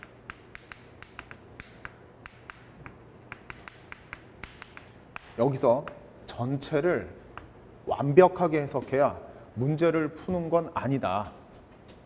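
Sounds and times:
chalk tapping on blackboard: 0.0s - 6.0s.

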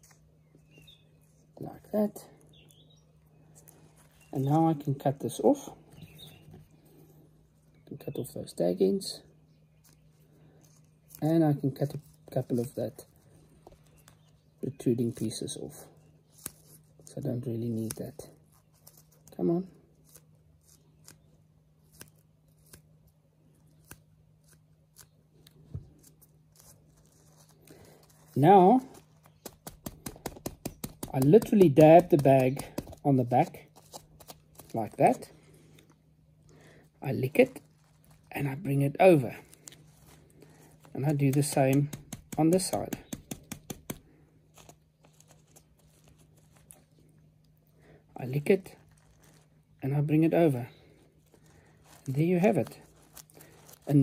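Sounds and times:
faint steady hum: 0.0s - 54.0s
scissors snipping: 16.3s - 19.4s, 21.8s - 22.9s, 23.6s - 27.5s, 40.9s - 44.0s.

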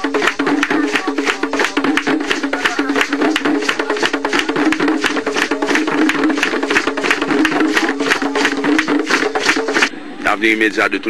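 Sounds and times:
hand drum struck quickly: 0.0s - 9.9s.

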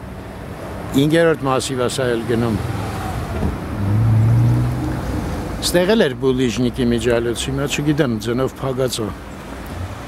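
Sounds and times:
road noise: 0.0s - 10.0s
vehicle engine driving by: 2.1s - 5.9s.

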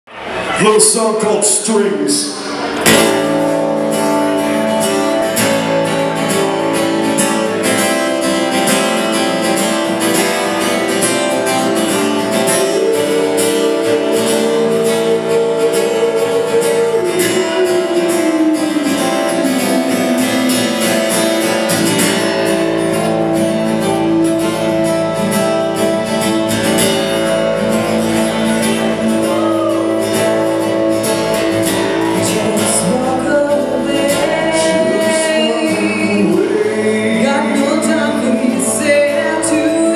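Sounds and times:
acoustic guitar strumming: 0.2s - 39.9s
woman singing: 12.1s - 21.7s, 32.2s - 39.9s.

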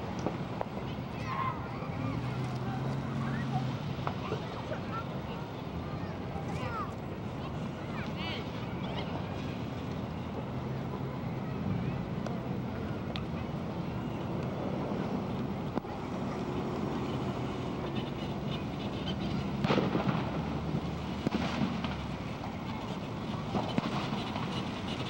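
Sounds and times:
low rumble and hiss: 0.0s - 25.0s
burst of noise: 19.5s - 25.0s.

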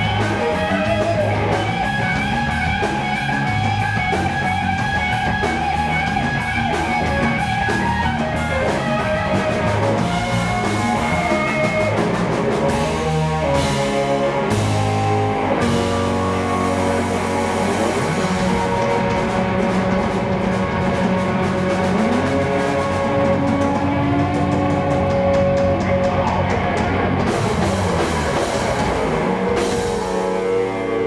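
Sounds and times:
bass guitar: 0.0s - 31.0s
drum kit with cymbals: 0.0s - 31.0s
electric guitars: 0.0s - 31.0s.

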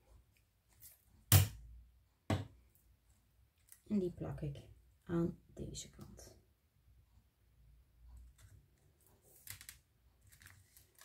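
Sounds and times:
paper rustling and clicks: 9.2s - 11.0s.

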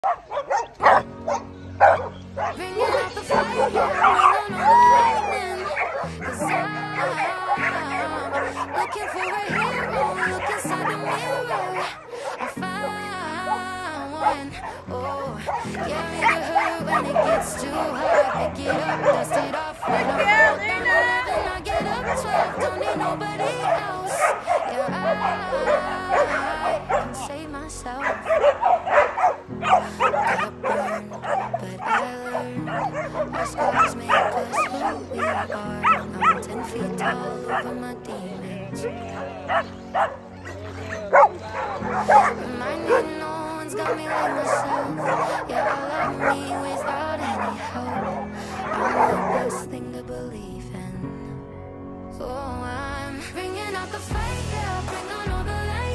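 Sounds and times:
dogs yipping and barking: 0.0s - 49.9s
pop song: 0.0s - 55.9s.

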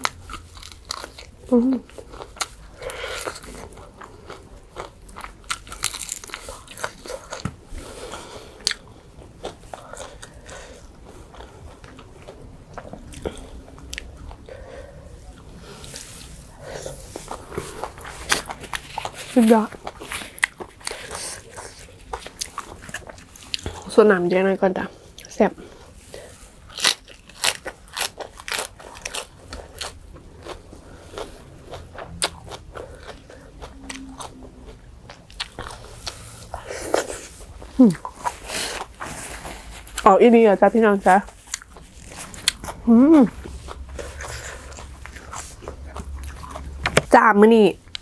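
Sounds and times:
mouth chewing food: 0.0s - 24.1s, 24.7s - 48.0s
woman humming: 1.5s - 1.9s, 42.8s - 43.4s
woman speaking: 19.3s - 19.8s, 23.8s - 25.6s, 40.0s - 41.3s, 42.8s - 43.4s, 47.0s - 47.8s.

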